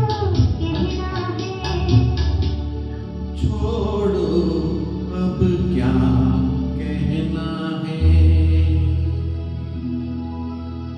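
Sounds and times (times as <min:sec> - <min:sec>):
recorded backing track: 0:00.0 - 0:10.9
man singing into a microphone: 0:03.4 - 0:09.4.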